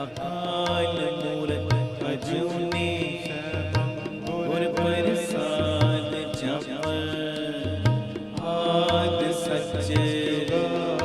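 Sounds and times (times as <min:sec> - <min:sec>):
harmonium chords: 0:00.0 - 0:11.0
person singing devotional melody: 0:00.0 - 0:11.0
tabla rhythm: 0:00.0 - 0:11.0.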